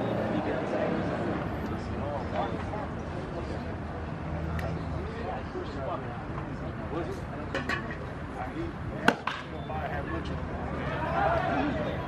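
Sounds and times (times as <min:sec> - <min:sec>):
background chatter: 0:00.0 - 0:12.0
baseball popping into leather mitt: 0:09.0 - 0:09.5.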